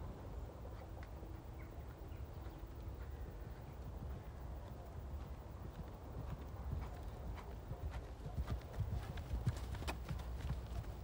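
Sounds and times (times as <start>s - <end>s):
horse hoofbeats on sand: 5.2s - 11.0s.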